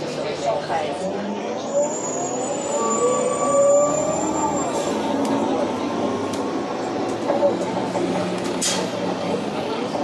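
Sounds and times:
bus drivetrain whining: 0:00.0 - 0:10.0
road noise: 0:00.0 - 0:10.0.

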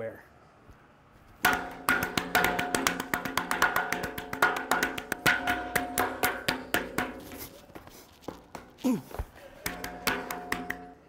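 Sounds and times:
hand drumming on hollow metal pole: 0:01.4 - 0:08.8, 0:09.6 - 0:11.0.

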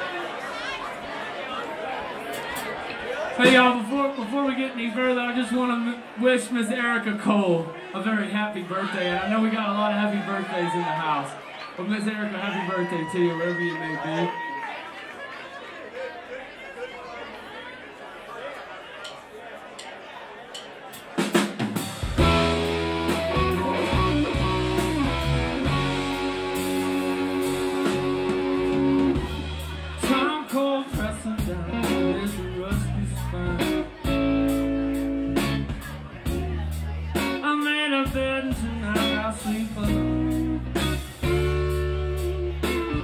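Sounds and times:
crowd murmur: 0:00.0 - 0:43.0
bass guitar: 0:21.7 - 0:43.0
held keyboard chords: 0:22.0 - 0:30.4, 0:38.2 - 0:43.0
electric guitar: 0:22.0 - 0:43.0.

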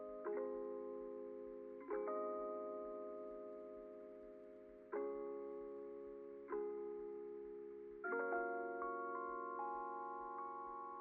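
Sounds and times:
quiet background music chords: 0:00.0 - 0:11.0.

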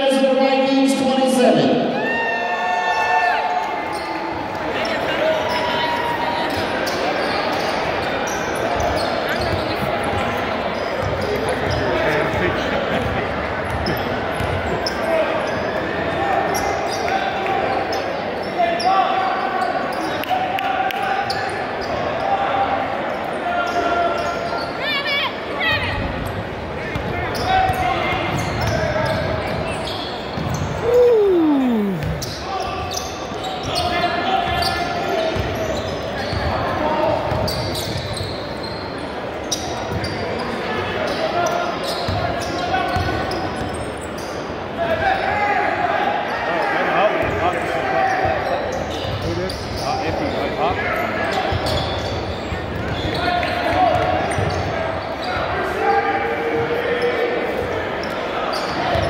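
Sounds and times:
people calling out: 0:30.8 - 0:32.4.

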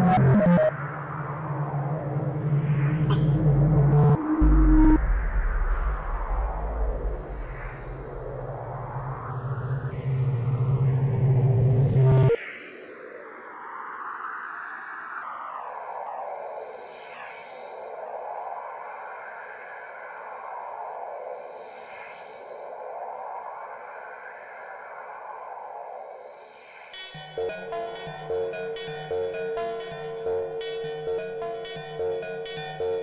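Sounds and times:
heavy low electronic tone: 0:00.0 - 0:12.3, 0:27.0 - 0:33.0
filtered noise in slow waves: 0:00.0 - 0:33.0
held electronic drone: 0:27.0 - 0:33.0.

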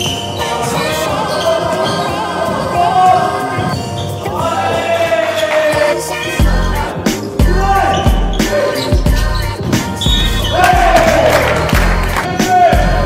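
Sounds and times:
music with booming bass beat: 0:06.2 - 0:13.0.

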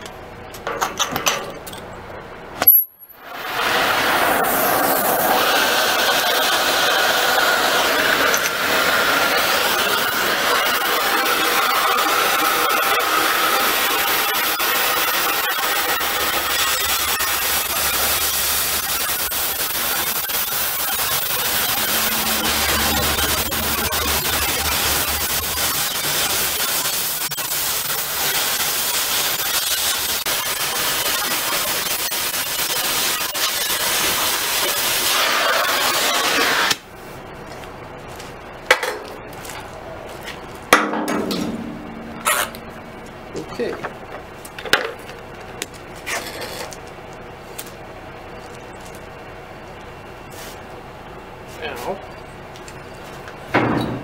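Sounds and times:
cutting torch hissing: 0:03.2 - 0:36.8
sharp metal knocks: 0:40.7 - 0:44.9.

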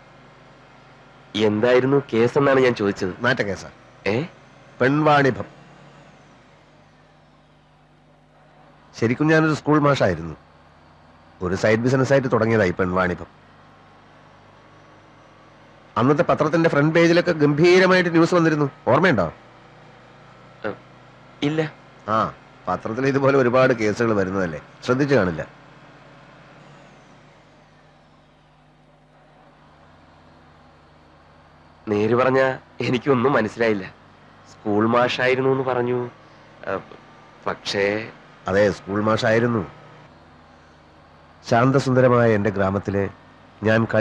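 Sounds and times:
bus engine hum: 0:00.0 - 0:44.0.

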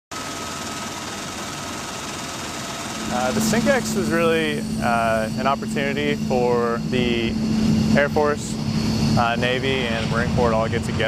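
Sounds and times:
aircraft cabin drone: 0:00.2 - 0:11.0
thin steady whine: 0:00.2 - 0:11.0.

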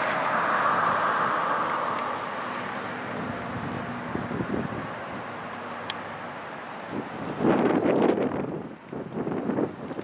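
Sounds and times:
wind buffeting microphone: 0:03.0 - 0:05.4, 0:06.8 - 0:10.0.

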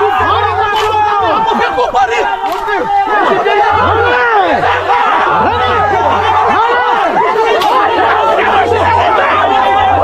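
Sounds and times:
group chanting and shouting: 0:00.0 - 0:10.0.

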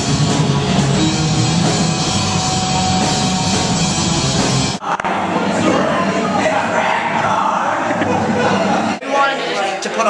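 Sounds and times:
live rock band playing: 0:00.0 - 0:04.8
young man talking: 0:09.0 - 0:10.0.

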